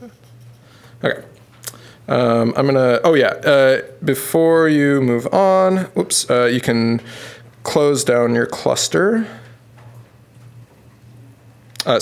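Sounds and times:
low steady hum: 0.0s - 12.0s
man talking: 1.0s - 1.3s, 2.1s - 9.5s, 11.8s - 12.0s.

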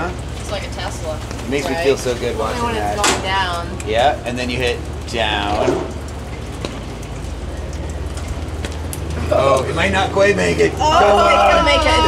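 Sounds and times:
light ticks: 5.8s - 9.7s.

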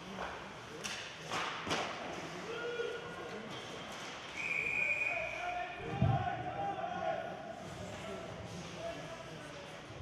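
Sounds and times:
voices of spectators and players: 0.0s - 10.0s.

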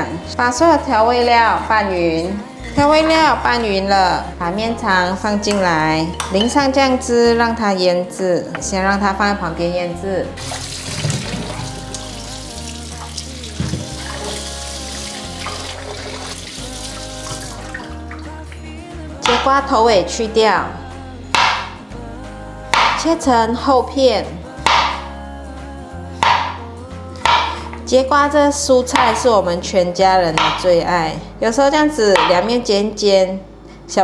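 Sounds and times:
soft background music: 0.0s - 34.0s
knife striking cutting board: 19.2s - 19.6s, 21.4s - 21.8s, 22.7s - 23.1s, 24.6s - 25.0s, 26.2s - 26.6s, 27.2s - 27.8s, 29.0s - 29.3s, 30.4s - 30.7s, 32.2s - 32.5s.

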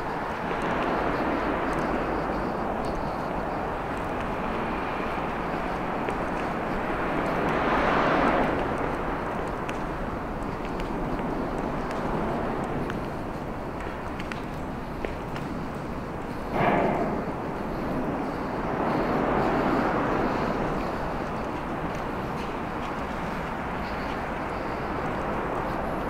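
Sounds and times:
highway traffic hum: 0.0s - 26.0s.

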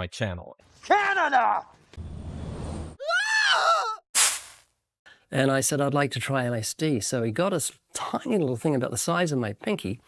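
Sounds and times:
high-pitched cry: 3.0s - 4.0s.

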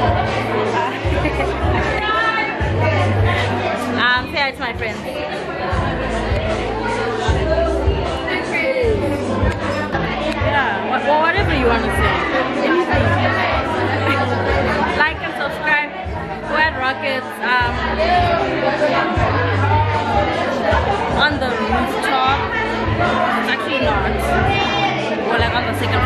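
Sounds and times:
background music with bass line: 0.0s - 15.4s
chatter of several voices: 0.0s - 26.0s.

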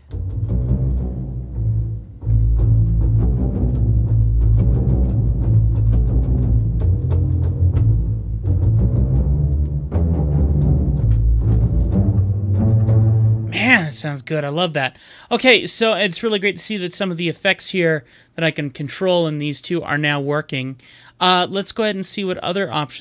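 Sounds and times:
deep low string notes: 0.0s - 13.8s.

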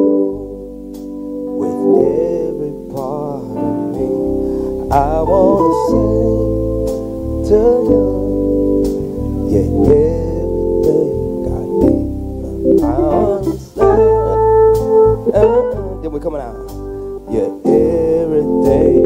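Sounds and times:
deep bass notes: 0.0s - 19.0s
gospel band playing: 0.0s - 19.0s
keyboard and organ chords: 0.0s - 19.0s.

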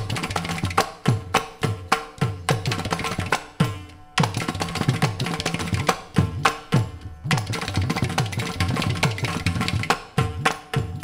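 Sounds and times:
mridangam drumming: 0.0s - 11.0s.

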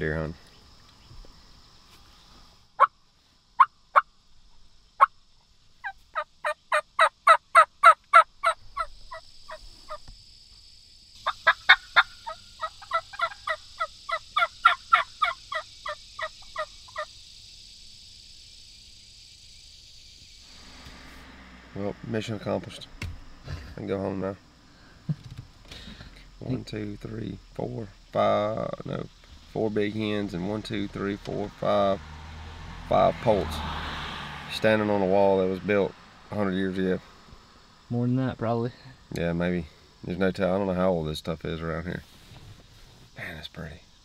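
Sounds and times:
steady high hiss: 0.0s - 32.0s, 34.5s - 44.0s
turkeys yelping: 5.8s - 10.0s, 11.2s - 17.1s.

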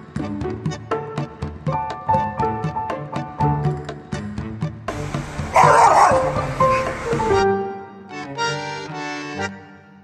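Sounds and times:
background music with held notes: 0.0s - 10.0s
dog barking angrily: 5.5s - 6.5s.

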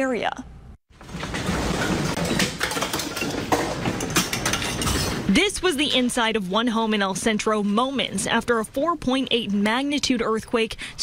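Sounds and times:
household objects clinking and clattering: 0.9s - 5.4s.

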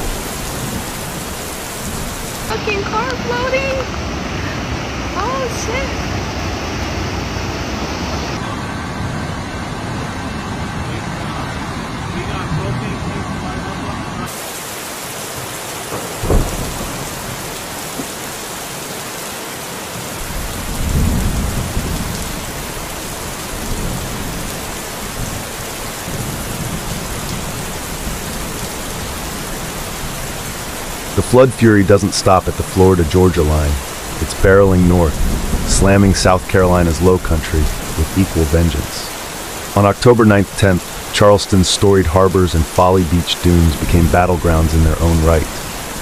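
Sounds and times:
floodwater rushing: 0.0s - 46.0s
heavy rain: 0.0s - 46.0s.

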